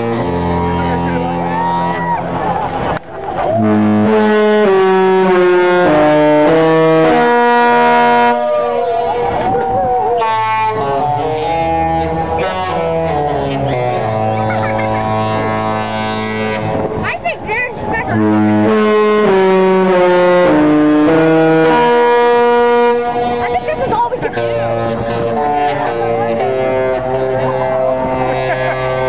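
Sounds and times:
ship horn playing a tune: 0.0s - 2.4s, 3.4s - 17.0s, 18.0s - 29.0s.

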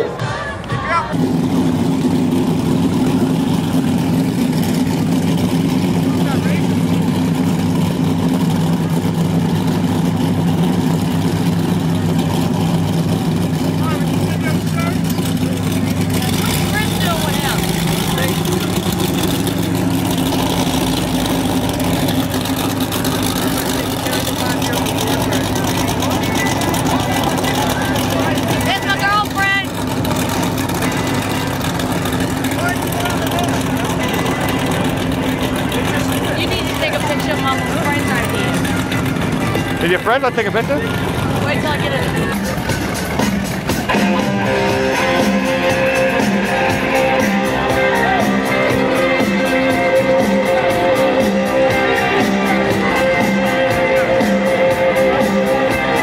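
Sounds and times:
powerboat engine drone: 0.0s - 56.0s
faint voices: 7.8s - 56.0s.

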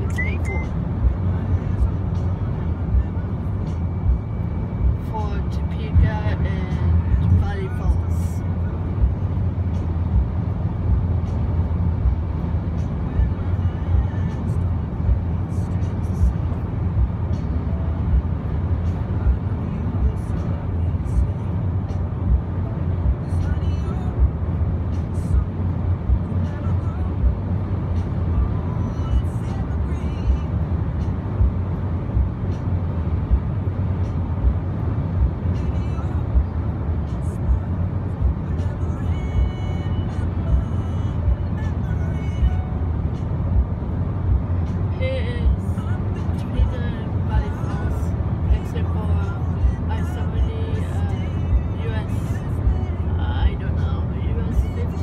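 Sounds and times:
car cabin road and engine rumble: 0.0s - 55.0s.

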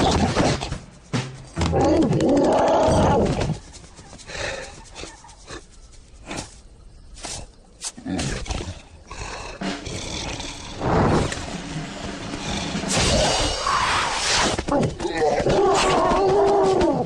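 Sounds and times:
cartoon lion roaring: 1.6s - 3.6s.

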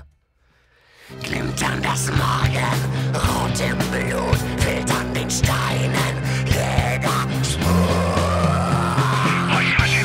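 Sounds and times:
distorted guitars and bass: 1.1s - 10.0s.

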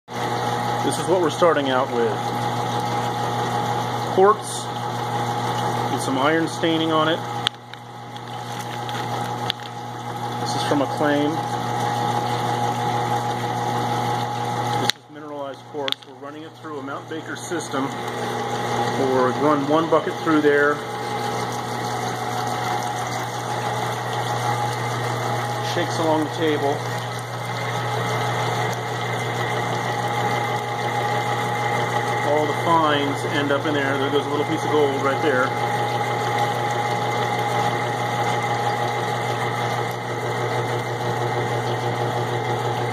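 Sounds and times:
motor hum: 0.1s - 42.9s.

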